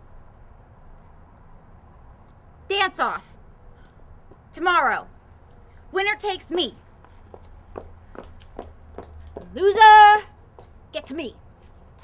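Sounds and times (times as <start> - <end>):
faint footsteps: 3.8 - 4.5, 6.7 - 9.6, 10.4 - 10.8, 11.4 - 12.0.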